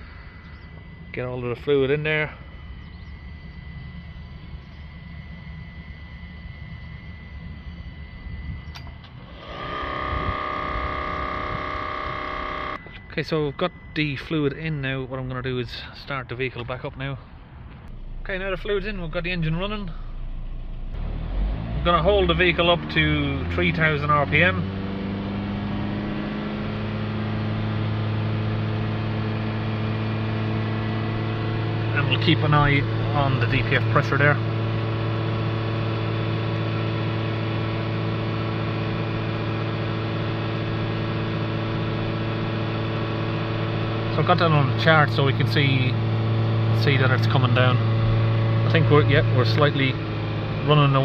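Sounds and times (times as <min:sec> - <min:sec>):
diesel engine steady drone: 0:00.0 - 0:51.0.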